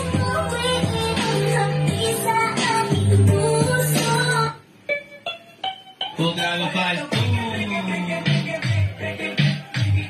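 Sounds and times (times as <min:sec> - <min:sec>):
pop song with singing: 0:00.0 - 0:04.7, 0:06.0 - 0:10.0.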